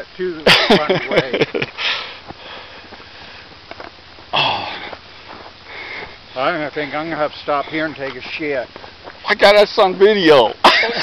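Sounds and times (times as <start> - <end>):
man laughing: 0.4 - 2.0, 10.6 - 11.0
noisy breath: 1.7 - 9.2.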